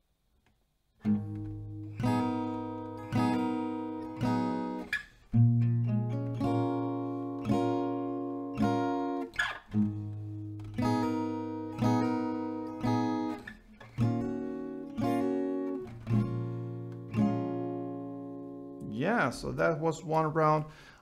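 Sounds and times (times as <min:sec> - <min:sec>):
acoustic guitar chords ringing: 0:01.0 - 0:20.9.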